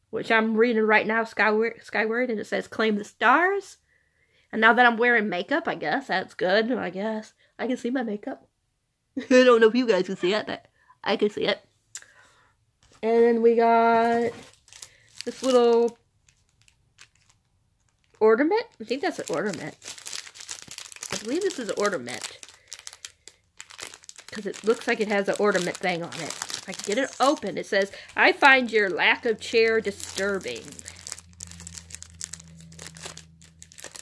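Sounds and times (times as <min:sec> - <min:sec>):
plastic packaging crinkling: 0:13.8 - 0:34.0.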